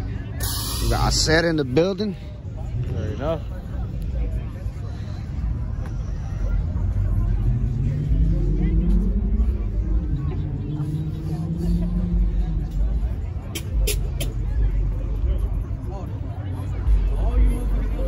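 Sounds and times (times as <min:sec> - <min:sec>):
steady low rumble: 0:00.0 - 0:18.0
car engine revving: 0:06.5 - 0:15.2.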